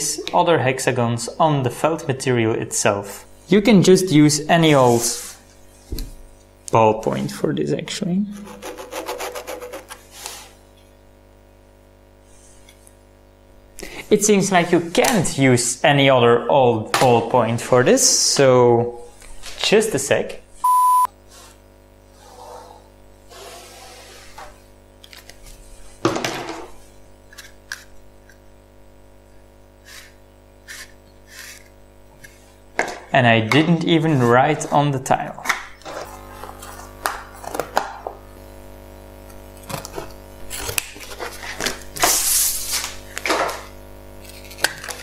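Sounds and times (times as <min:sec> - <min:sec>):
pen scratching on plastic: 0:08.4 - 0:10.0.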